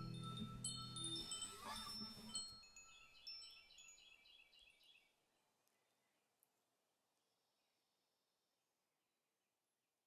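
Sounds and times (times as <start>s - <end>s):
high chime tones: 0.0s - 4.3s.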